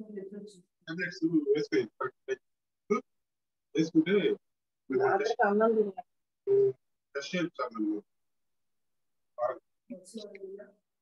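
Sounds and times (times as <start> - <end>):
speech over video call: 0.0 - 11.0.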